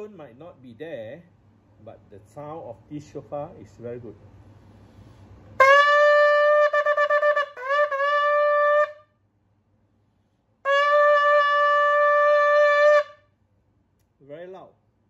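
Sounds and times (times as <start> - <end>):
ram's horn blasts: 5.6 - 9.1, 10.6 - 13.3.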